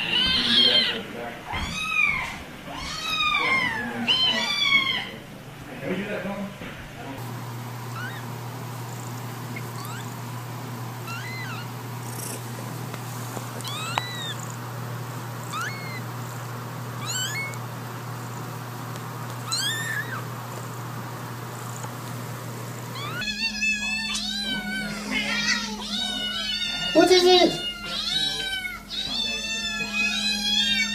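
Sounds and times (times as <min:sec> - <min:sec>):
cat meowing: 0:00.0 - 0:05.2, 0:07.9 - 0:08.4, 0:09.6 - 0:10.2, 0:11.0 - 0:12.4, 0:13.6 - 0:14.6, 0:15.4 - 0:16.1, 0:17.0 - 0:17.6, 0:19.4 - 0:20.3, 0:23.0 - 0:30.9
steady low hum: 0:05.1 - 0:30.9.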